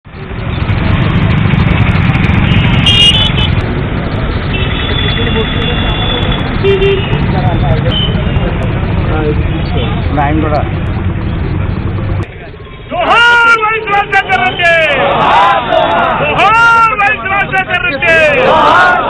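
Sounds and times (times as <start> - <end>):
road traffic: 0.0 - 19.0
vehicle horns: 2.2 - 3.6, 4.5 - 8.7
people talking: 4.9 - 19.0.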